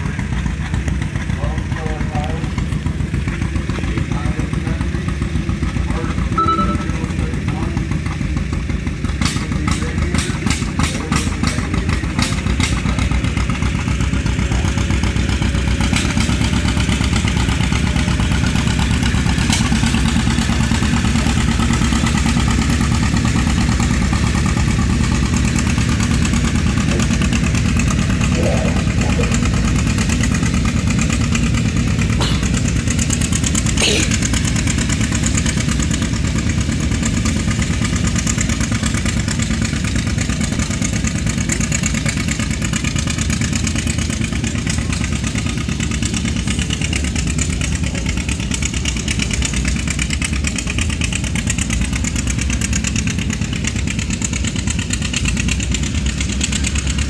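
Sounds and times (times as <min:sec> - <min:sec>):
tractor engine running under load: 0:00.0 - 0:57.0.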